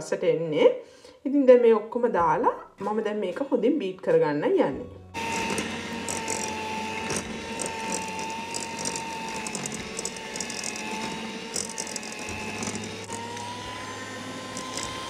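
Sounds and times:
electric hand mixer whining: 5.2s - 15.0s
beaters clicking against bowl: 5.4s - 13.2s.

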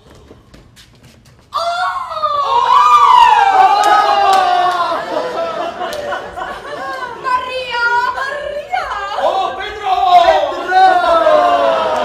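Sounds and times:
people screaming: 1.6s - 5.6s.

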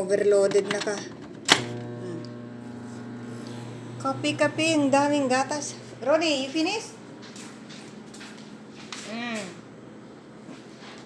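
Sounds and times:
microwave oven humming: 0.6s - 11.0s.

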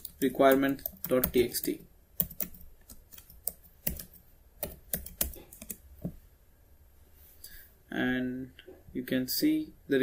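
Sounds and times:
computer keyboard typing: 0.0s - 5.8s.

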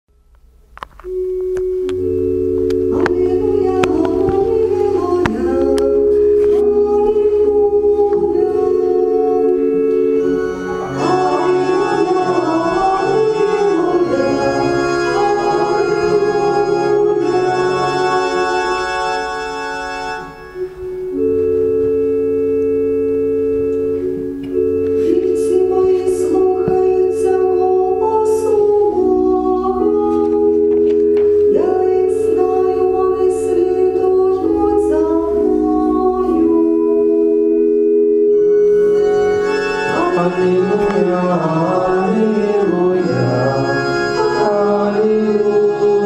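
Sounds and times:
organ holding notes: 0.2s - 46.0s
liturgical singing: 2.0s - 20.5s, 39.6s - 46.0s.

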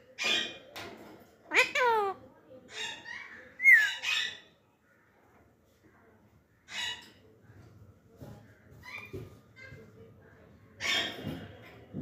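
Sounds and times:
parakeet squawking: 1.5s - 2.2s.

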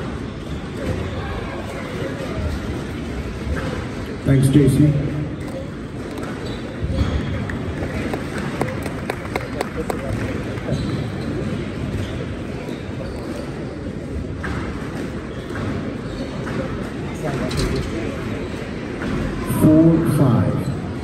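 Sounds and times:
spectator chatter in echoing hall: 0.0s - 21.0s.

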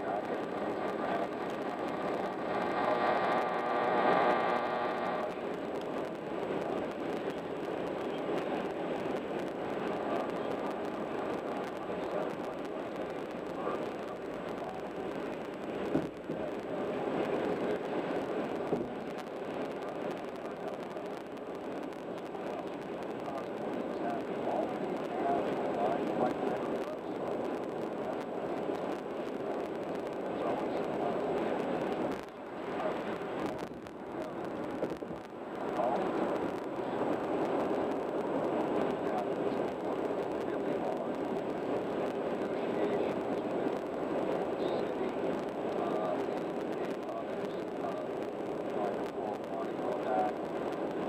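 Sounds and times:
road and tyre noise inside car: 0.1s - 51.0s.

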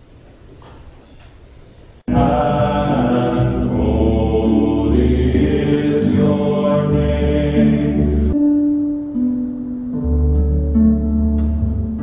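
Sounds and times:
choral chanting: 2.1s - 8.4s
steady low bass: 2.1s - 9.2s.

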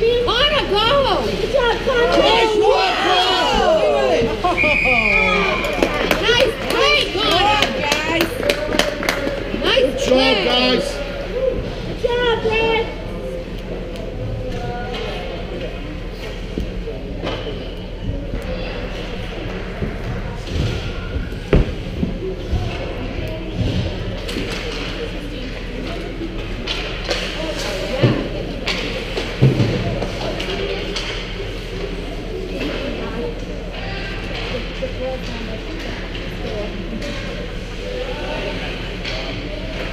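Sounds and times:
indistinct chatter: 0.0s - 39.9s.

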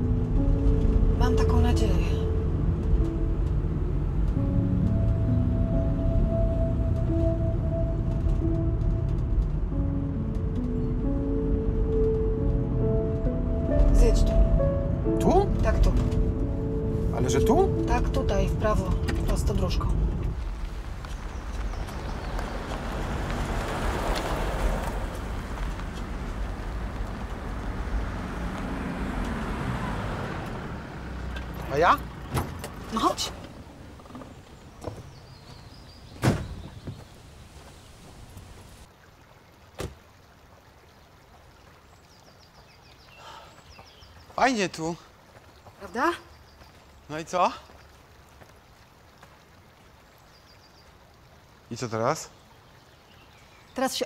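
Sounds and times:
engine rumble: 0.0s - 38.9s
flowing water hiss: 20.3s - 54.0s.

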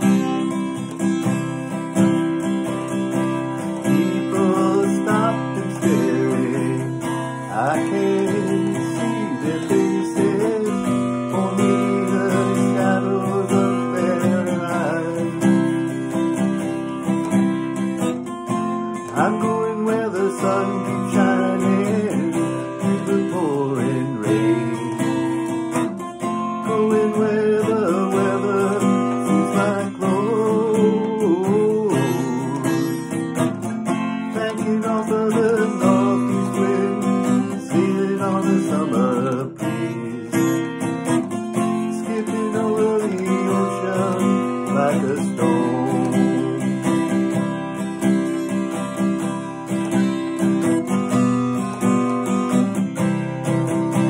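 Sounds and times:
acoustic guitar strummed: 0.0s - 54.0s
wordless melody line: 0.0s - 54.0s.

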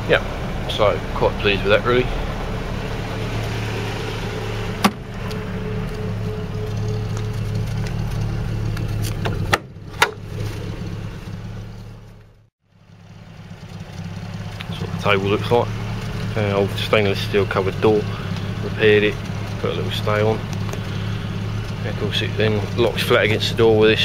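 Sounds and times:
car engine idling: 0.0s - 24.0s.

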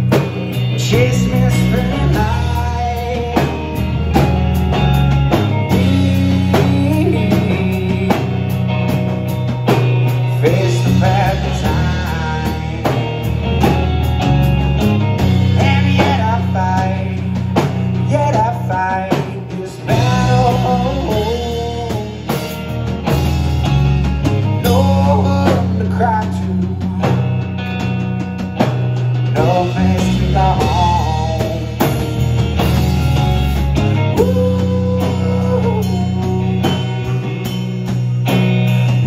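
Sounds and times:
drum kit: 0.0s - 39.0s
electric bass: 0.0s - 39.0s
electric guitar: 0.0s - 39.0s.

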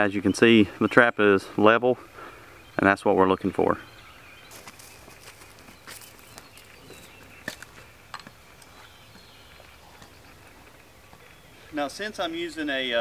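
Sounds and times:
footsteps crunching on ground: 4.2s - 12.3s.

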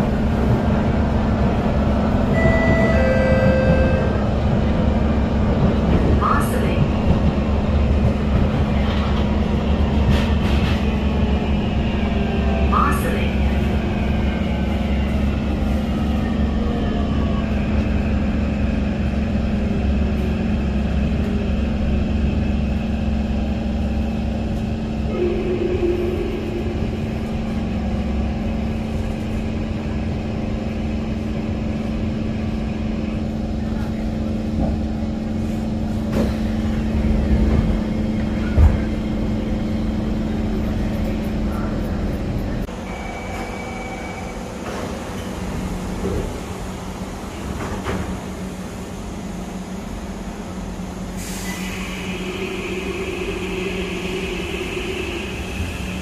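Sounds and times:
train low hum: 0.0s - 56.0s.

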